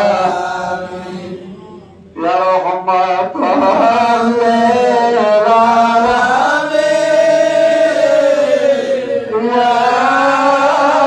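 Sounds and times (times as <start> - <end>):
men chanting together: 0.0 - 11.0.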